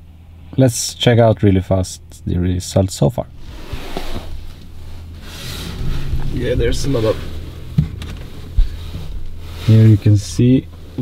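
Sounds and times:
low steady car cabin hum: 0.0s - 11.0s.

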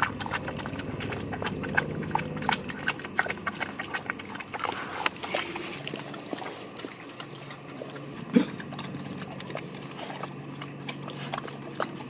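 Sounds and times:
dog eating from metal bowl: 0.0s - 12.0s.

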